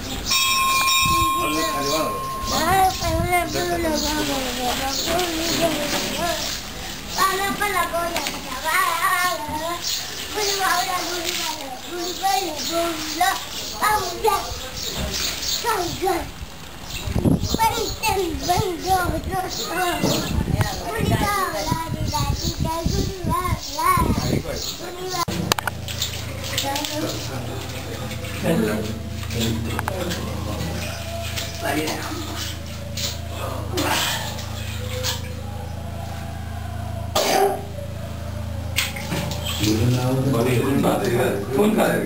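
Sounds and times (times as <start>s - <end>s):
children chattering and calling: 0.0s - 42.0s
steady low hum: 22.1s - 42.0s
person coughing: 37.2s - 37.6s.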